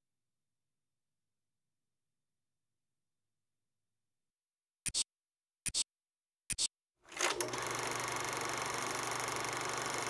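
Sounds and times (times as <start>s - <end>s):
cine camera whirring clatter: 7.1s - 10.0s.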